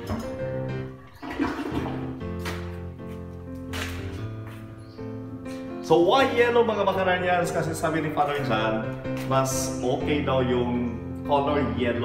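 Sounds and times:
toilet flushing: 0.0s - 2.6s
background music: 0.0s - 12.0s.

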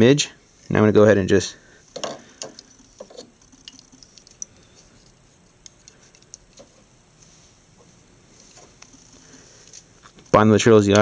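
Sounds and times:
low room hiss: 0.0s - 11.0s
small ticks and rustles: 1.9s - 10.4s.

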